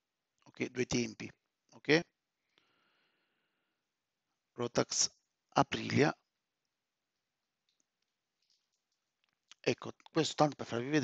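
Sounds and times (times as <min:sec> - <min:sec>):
man speaking: 0:00.5 - 0:02.2, 0:04.6 - 0:06.2, 0:09.5 - 0:11.0.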